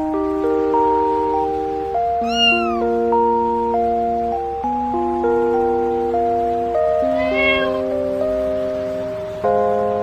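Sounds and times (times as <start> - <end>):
kitten mewing: 2.2 - 3.0, 7.0 - 7.9.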